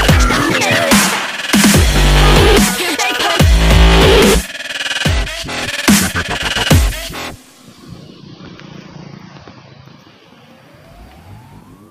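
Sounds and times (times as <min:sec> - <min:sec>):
vehicle engine accelerating: 0:05.3 - 0:11.9
traffic noise: 0:07.0 - 0:11.9.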